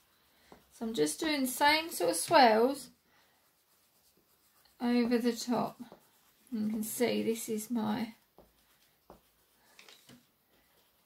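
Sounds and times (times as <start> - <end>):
pencil scratching on paper: 0.0 - 11.0.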